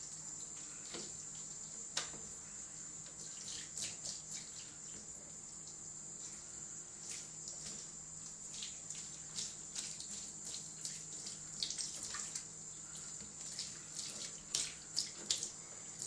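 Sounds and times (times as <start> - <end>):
tap water running into bathtub: 3.0 - 6.4, 7.0 - 16.0.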